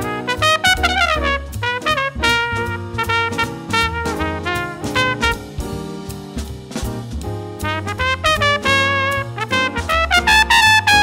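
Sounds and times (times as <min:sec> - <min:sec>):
trumpet playing jazz solo: 0:00.0 - 0:06.0, 0:07.6 - 0:11.0.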